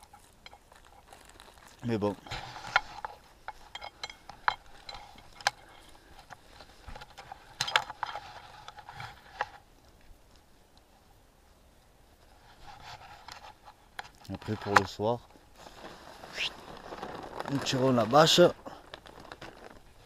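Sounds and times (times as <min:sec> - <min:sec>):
rubbing and rustling handling noise: 0:00.0 - 0:20.0.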